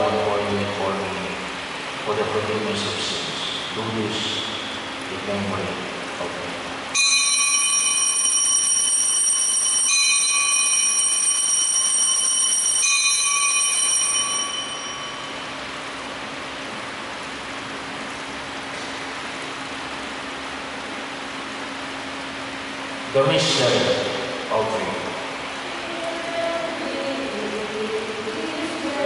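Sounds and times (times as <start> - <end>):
altar bells ringing: 7.0 - 16.2.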